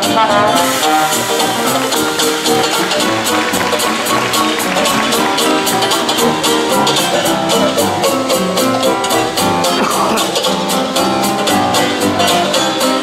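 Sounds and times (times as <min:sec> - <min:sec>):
jazz band playing: 0:00.0 - 0:13.0.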